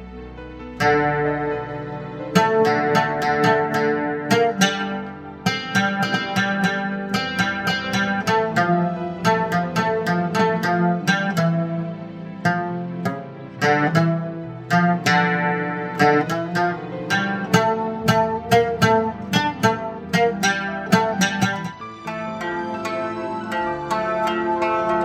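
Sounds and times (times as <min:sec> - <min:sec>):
oud melody: 0:00.0 - 0:25.0.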